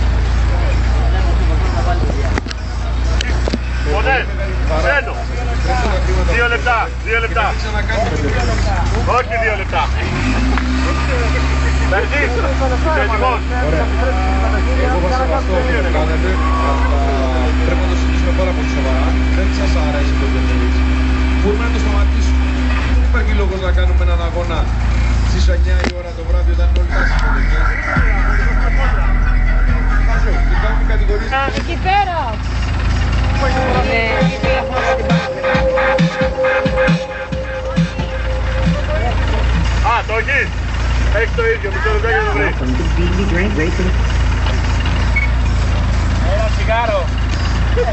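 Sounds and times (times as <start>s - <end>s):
loud music with deep bass: 0.0s - 47.9s
people calling out: 10.9s - 17.7s, 26.9s - 40.8s
voice singing or talking: 33.2s - 40.3s.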